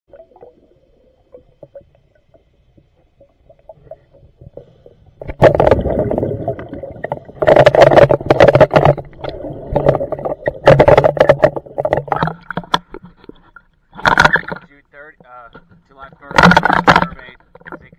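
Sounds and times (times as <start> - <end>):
exhaled bubbles rushing: 5.2 - 12.7.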